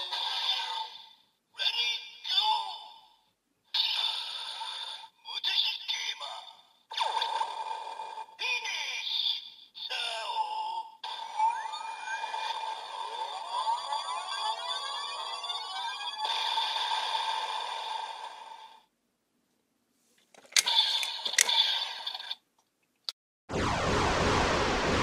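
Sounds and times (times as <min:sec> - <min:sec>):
toy electronic sound effects: 0:11.0 - 0:17.5
sharp plastic clicks: 0:20.2 - 0:21.6.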